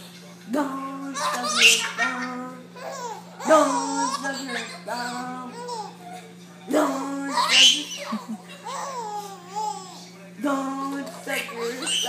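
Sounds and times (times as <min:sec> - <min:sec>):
baby squealing and laughing: 0:07.3 - 0:09.9.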